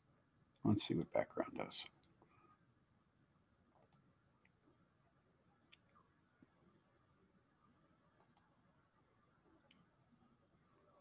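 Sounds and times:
computer mouse clicks: 3.8s - 4.6s, 8.2s - 8.5s.

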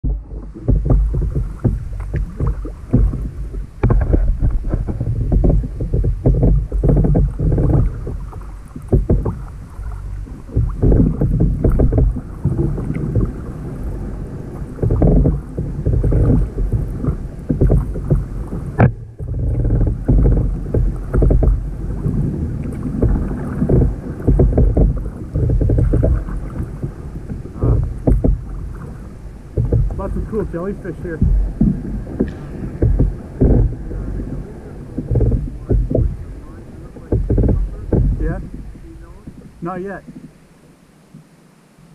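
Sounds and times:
dull low rumble: 0.0s - 40.5s
water washing against kayak hull: 0.0s - 41.9s.

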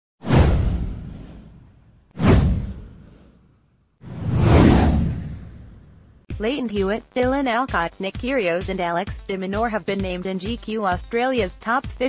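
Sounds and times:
whoosh: 0.2s - 6.3s
deep low boom: 0.3s - 3.3s, 4.1s - 6.3s.

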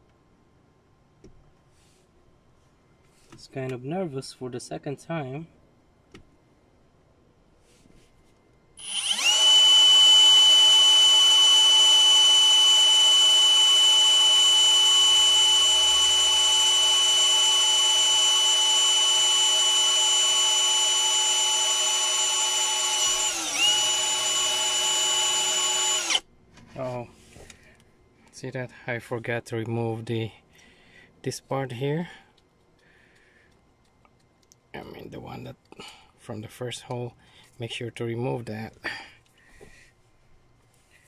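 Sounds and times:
cordless drill whining: 8.8s - 26.3s.

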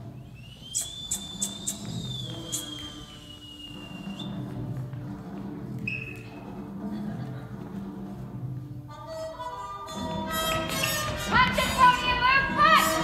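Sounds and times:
long sliding whistle: 0.2s - 4.4s
orchestral music: 1.8s - 13.0s.

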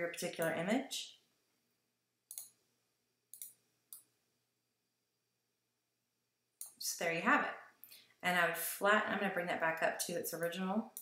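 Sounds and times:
faint computer mouse clicks: 2.3s - 2.6s, 3.3s - 4.1s, 6.6s - 6.8s.

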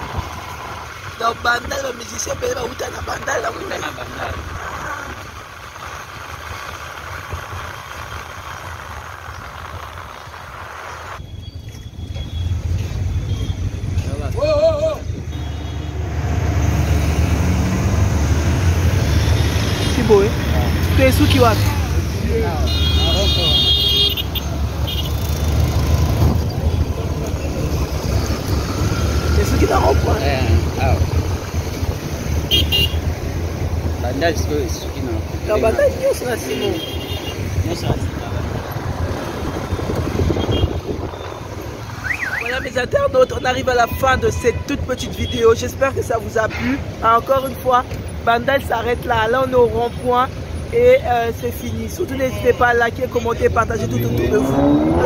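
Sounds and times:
voices: 0.0s - 5.6s, 14.0s - 15.2s, 19.0s - 25.6s, 26.4s - 32.9s, 33.5s - 41.2s, 42.0s - 55.0s
motorcycle engine and road rumble: 0.0s - 55.0s
horn toot: 15.2s - 16.1s, 22.5s - 25.6s, 32.4s - 33.1s, 40.2s - 42.5s.

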